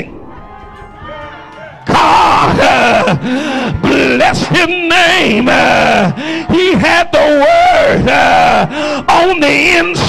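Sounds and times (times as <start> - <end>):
congregation calling out: 0.0 - 10.0
soft background music: 0.0 - 10.0.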